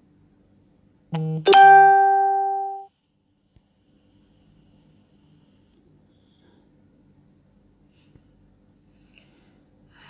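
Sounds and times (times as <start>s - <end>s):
two-note chime: 1.2s - 2.9s.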